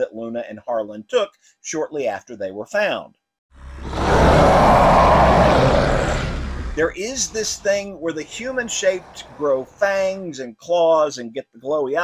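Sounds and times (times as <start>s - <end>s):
creature snarling roar: 3.6s - 9.4s.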